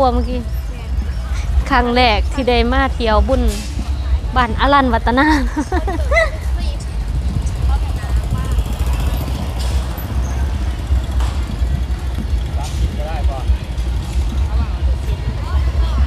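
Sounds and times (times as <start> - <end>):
faint voices: 0.0 - 16.0
low street rumble: 0.0 - 16.0
vehicles passing: 0.0 - 16.0.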